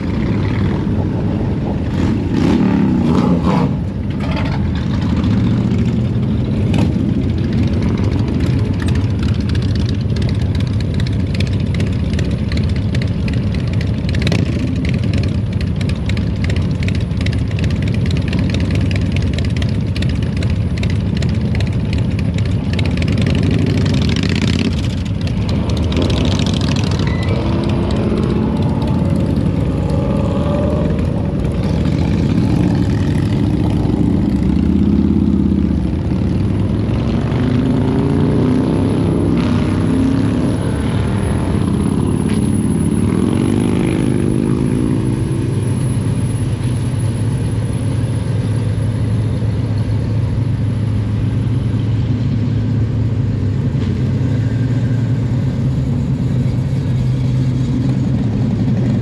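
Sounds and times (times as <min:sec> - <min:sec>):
vehicle engine running: 0:03.8 - 0:59.0.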